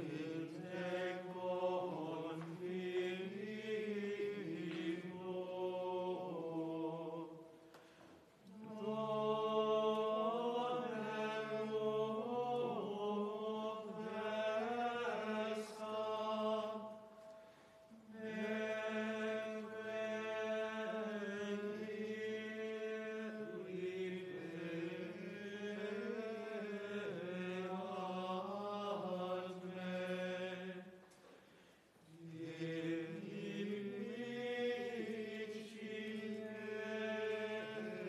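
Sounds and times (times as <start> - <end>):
choir chanting: 0.0 - 7.4, 8.5 - 17.3, 17.9 - 31.0, 32.1 - 38.0.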